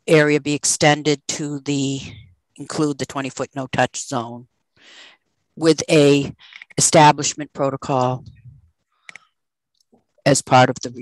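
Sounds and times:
small clicks: 9.0s - 10.0s.

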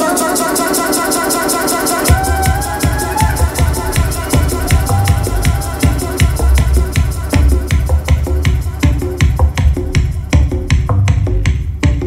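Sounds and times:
fast hi-hat pattern: 0.0s - 12.0s.

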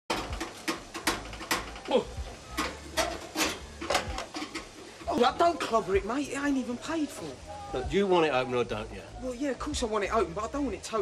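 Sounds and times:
oven door knocking and clicking: 0.1s - 1.9s.

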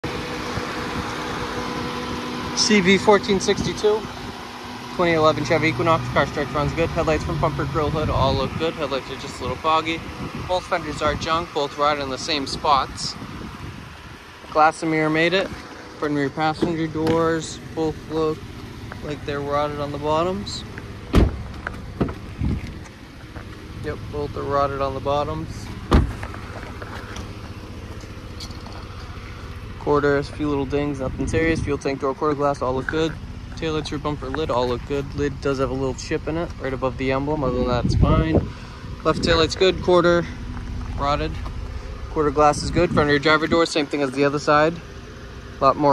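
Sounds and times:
car engine idling: 0.0s - 45.9s
car door slamming: 16.5s - 17.4s, 21.0s - 22.7s, 25.7s - 27.3s.

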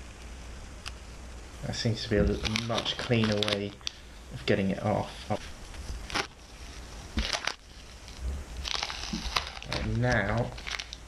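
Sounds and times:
masking tape peeling off: 0.0s - 11.0s.

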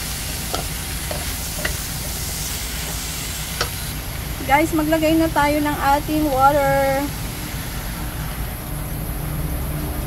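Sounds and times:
spatula stirring in wok: 0.0s - 4.0s
frying sizzle: 0.0s - 9.7s.

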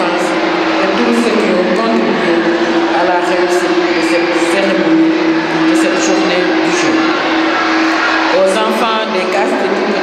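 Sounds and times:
indistinct voices in echoing hall: 0.0s - 10.0s
steady low hum: 0.0s - 10.0s.

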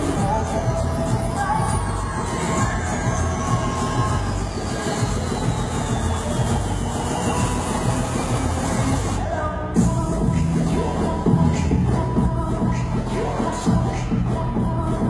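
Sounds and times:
crowd noise: 0.0s - 15.0s
dance track over sound system: 0.0s - 15.0s.

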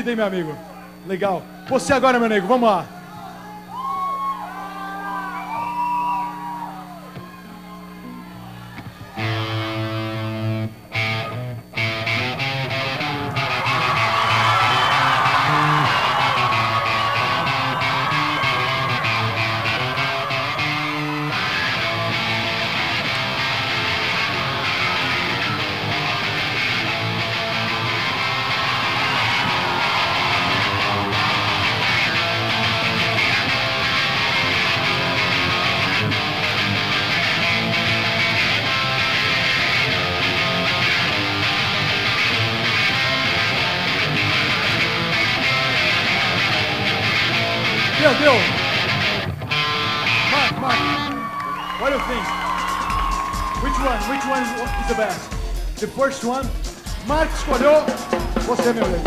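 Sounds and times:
electric guitar playing: 6.8s - 59.0s.

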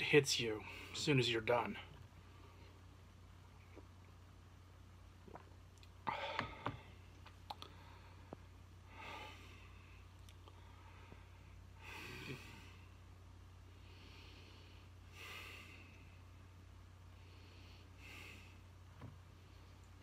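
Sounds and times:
steady low hum: 0.0s - 20.0s
man swallowing: 5.2s - 7.7s.

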